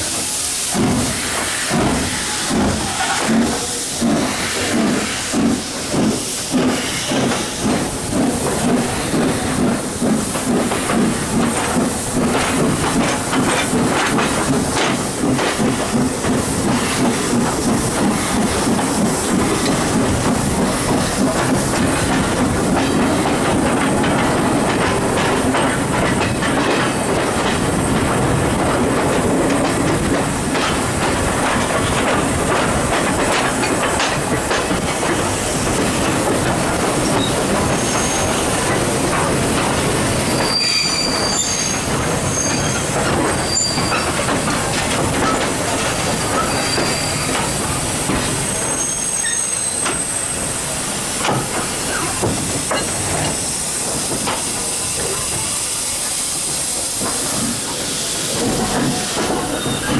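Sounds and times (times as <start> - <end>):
wheels clattering on rails: 0.0 - 59.9
high-pitched wheel squeals: 40.3 - 42.8, 43.4 - 44.1, 46.3 - 47.3, 48.5 - 50.2.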